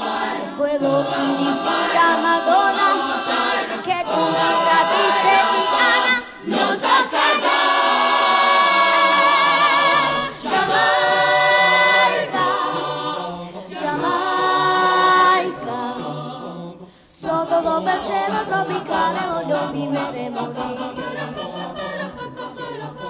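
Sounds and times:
children's choir singing: 0.0s - 23.0s.

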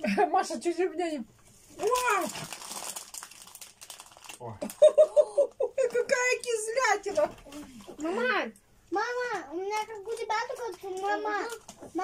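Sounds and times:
plastic packaging crinkling: 1.7s - 5.0s, 5.7s - 8.3s.

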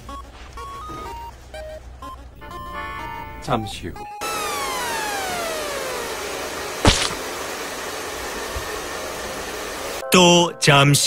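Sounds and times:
falling whistle sound effect: 4.2s - 7.2s
hair dryers blowing: 4.2s - 10.0s
sharp hit: 6.8s - 7.3s.

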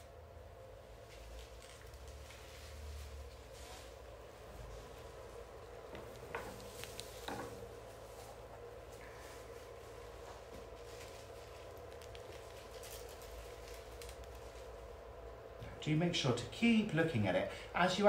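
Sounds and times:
steady low hum: 0.0s - 18.0s
rustling of flower stems: 0.9s - 15.3s
small crackles: 1.0s - 4.0s, 5.8s - 7.7s, 10.6s - 15.1s.

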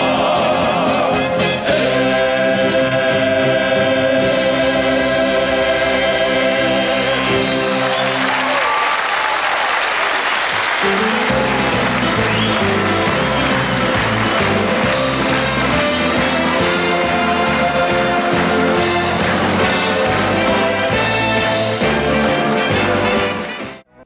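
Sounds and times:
male vocal quartet singing: 0.0s - 8.5s
backing band playing: 0.0s - 8.6s, 10.5s - 24.0s
audience applause: 7.2s - 23.4s.

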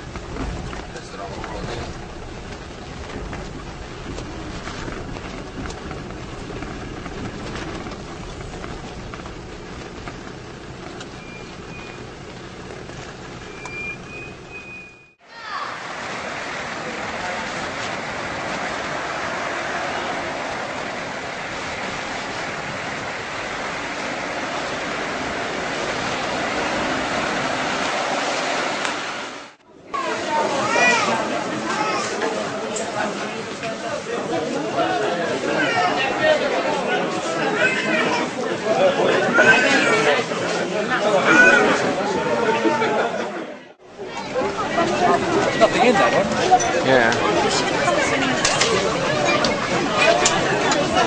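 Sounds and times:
steady rushing noise: 0.0s - 14.8s, 15.6s - 35.4s
vehicle engine drone and rumble: 0.0s - 29.6s.

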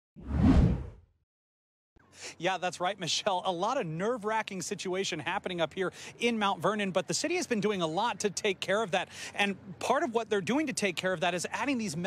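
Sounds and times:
whoosh sound effect: 0.2s - 1.0s.

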